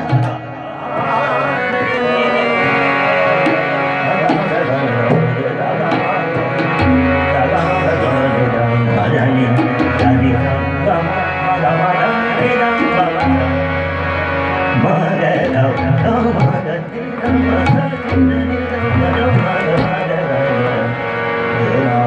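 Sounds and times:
harmonium notes: 0.0 - 22.0
man singing: 0.0 - 22.0
tabla drumming: 0.0 - 22.0
deep tabla bass strokes: 5.4 - 11.3.

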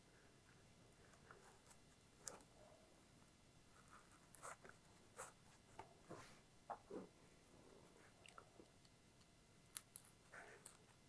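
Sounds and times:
faint scratches and creaks: 0.1 - 2.8, 3.7 - 11.0.

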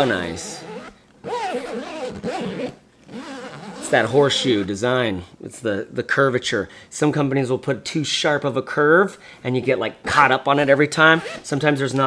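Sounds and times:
backpack zipper pulled: 0.0 - 4.5.

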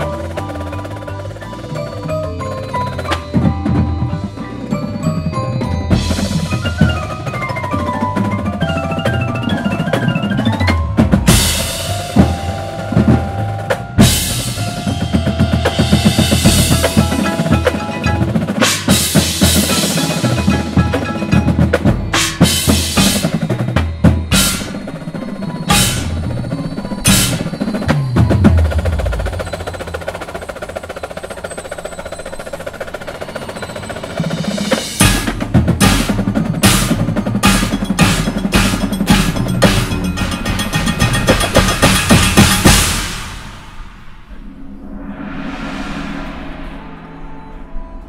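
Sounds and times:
bass drums: 0.0 - 25.0, 34.9 - 43.8
mallet percussion: 0.0 - 43.9
tenor drums: 0.0 - 48.0
timpani: 5.9 - 31.3, 33.0 - 48.0
marching snare drums: 5.9 - 43.6.

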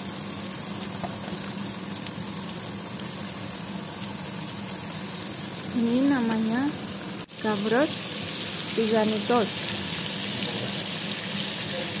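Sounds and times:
oil sizzling in a frying pan: 0.0 - 12.0.

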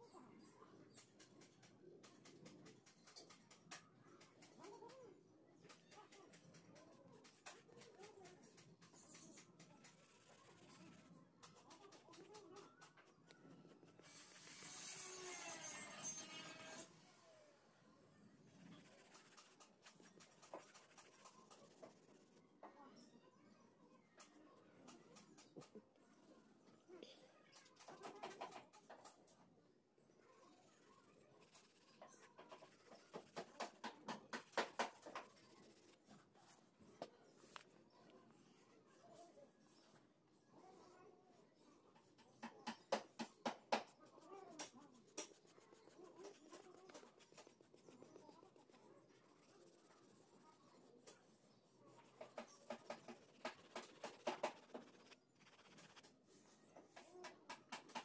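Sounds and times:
pencil scratching on paper: 5.7 - 16.9, 18.4 - 23.1, 27.5 - 29.2, 30.1 - 37.6, 42.0 - 58.0.

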